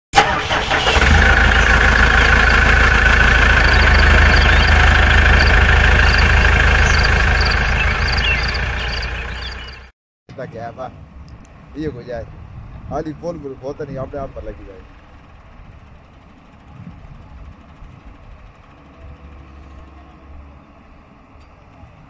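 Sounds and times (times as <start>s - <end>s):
engine starting and running: 0.2s - 9.9s.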